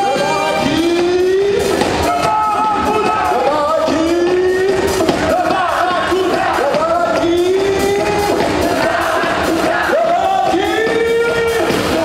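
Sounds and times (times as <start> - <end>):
audience noise: 0.0 - 12.0
live band music: 0.0 - 12.0.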